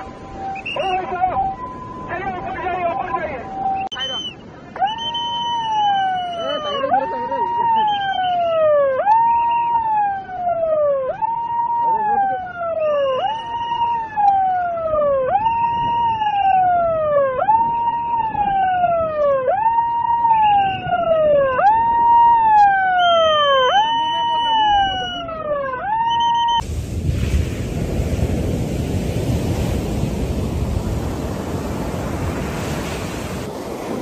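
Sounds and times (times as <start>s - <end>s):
siren wailing: 0.0s - 26.6s
wind: 0.0s - 34.0s
surf: 26.6s - 34.0s.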